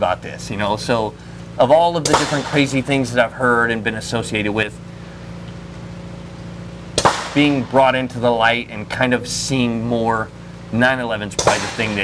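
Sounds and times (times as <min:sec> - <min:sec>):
low mechanical hum: 0:00.0 - 0:12.0
sharp crack: 0:02.0 - 0:03.2, 0:06.9 - 0:08.3, 0:11.4 - 0:12.0.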